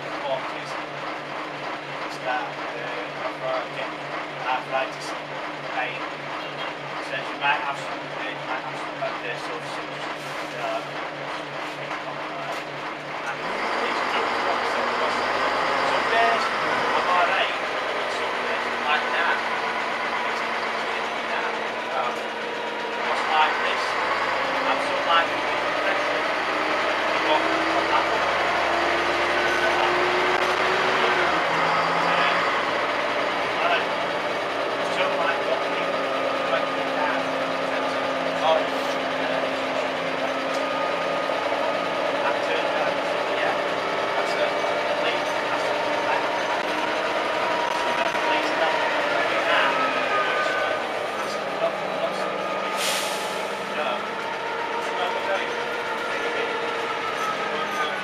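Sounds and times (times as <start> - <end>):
bus engine humming: 0.0 - 58.0
bus interior rattles: 0.0 - 58.0.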